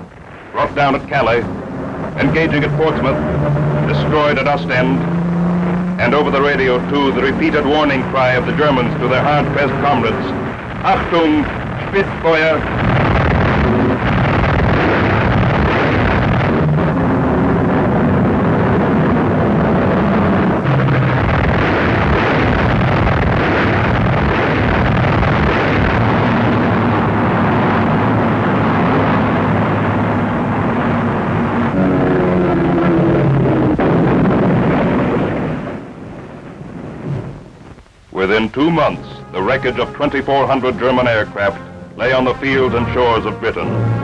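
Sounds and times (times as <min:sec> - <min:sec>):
propeller aircraft engines droning: 0:00.0 - 0:36.6, 0:37.5 - 0:44.0.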